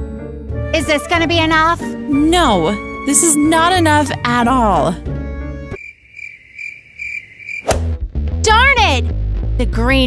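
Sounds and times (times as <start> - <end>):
crickets chirping: 5.8 - 7.8.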